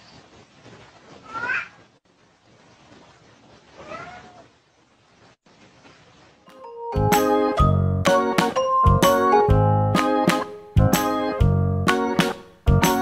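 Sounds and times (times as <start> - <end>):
cat meowing: 1.2 - 1.8, 3.8 - 4.6.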